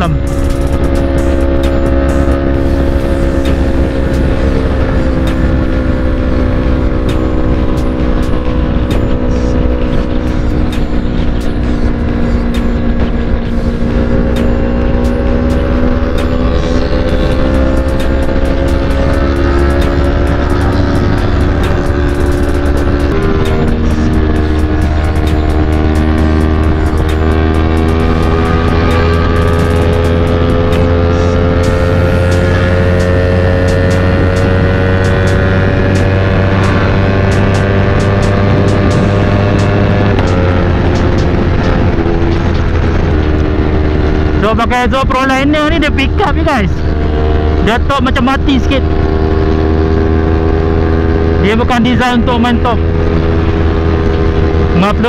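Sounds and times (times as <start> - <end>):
motorcycle engine cruising: 0.0 - 55.0
wind rumble on microphone: 7.6 - 55.0.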